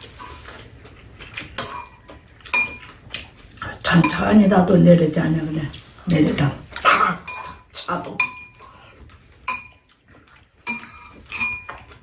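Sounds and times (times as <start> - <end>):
metal spoons clinking on bowls: 1.6 - 2.9, 3.9 - 4.4, 5.7 - 8.8, 9.5 - 9.9, 10.6 - 12.0.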